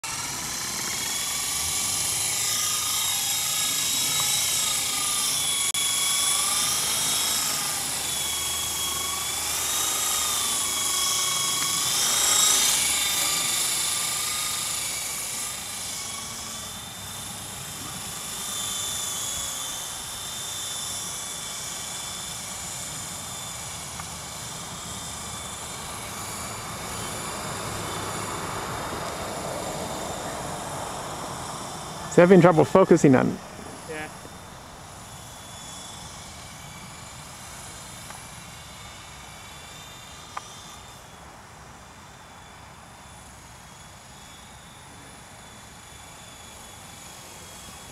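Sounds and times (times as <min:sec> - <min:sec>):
rc helicopter motor and rotor whine: 0:00.0 - 0:47.9.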